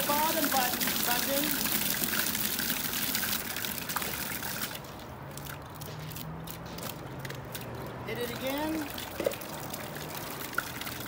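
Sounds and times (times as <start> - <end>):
fountain water splashing: 0.0 - 6.2, 7.5 - 11.0.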